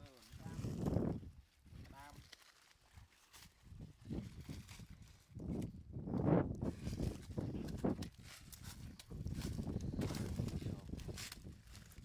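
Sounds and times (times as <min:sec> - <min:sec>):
footsteps on dry ground: 0:06.5 - 0:12.0.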